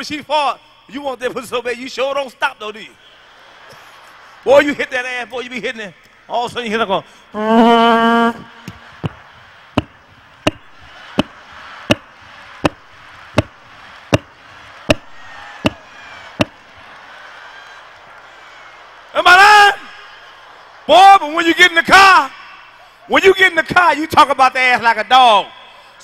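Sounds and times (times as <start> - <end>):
audience laughing: 3.2 - 4.5, 8.4 - 13.7
sharp knocks: 9.8 - 16.6.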